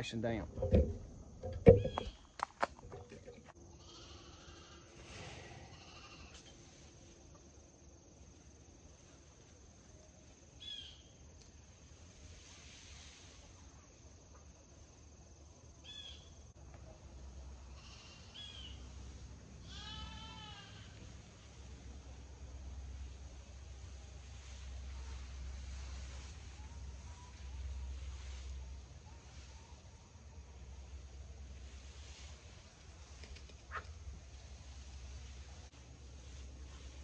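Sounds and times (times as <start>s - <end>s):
sharp knocks: 0.5s - 2.2s
garden hose spraying water: 20.7s - 37.0s.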